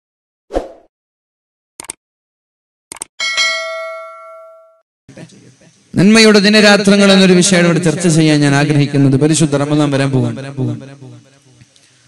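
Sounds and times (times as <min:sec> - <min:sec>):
bright bell chime: 0:03.2 - 0:04.8.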